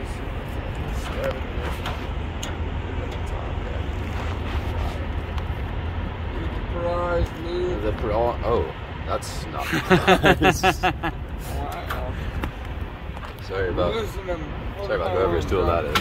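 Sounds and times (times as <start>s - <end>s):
low outdoor rumble: 0.0s - 16.0s.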